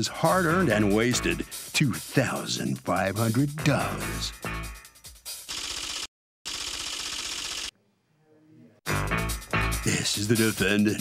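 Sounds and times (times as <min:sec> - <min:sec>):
fast mechanical rattle: 0:05.5 - 0:07.7.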